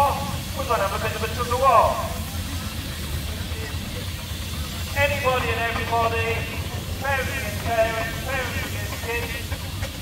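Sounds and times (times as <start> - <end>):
steam engine driving past: 0.0 - 10.0.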